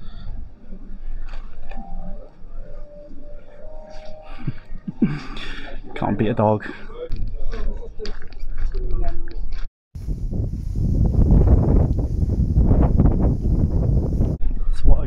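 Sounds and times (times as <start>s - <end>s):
wind buffeting microphone: 10.0s - 15.0s.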